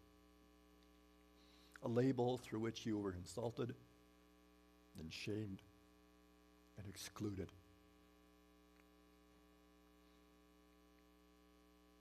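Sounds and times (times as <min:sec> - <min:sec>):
faint electrical mains hum: 0:00.0 - 0:12.0
man speaking: 0:01.8 - 0:03.8, 0:05.0 - 0:05.7, 0:06.8 - 0:07.6.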